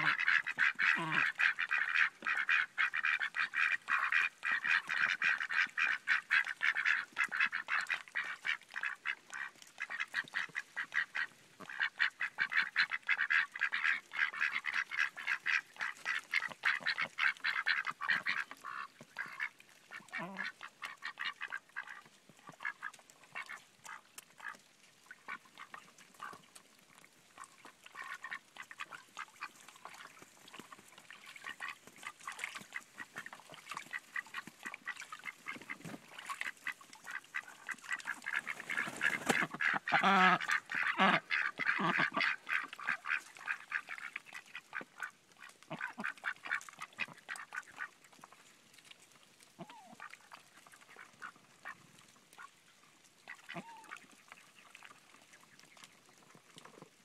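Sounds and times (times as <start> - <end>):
ducks quacking: 0.0 - 24.6, 27.4 - 47.9.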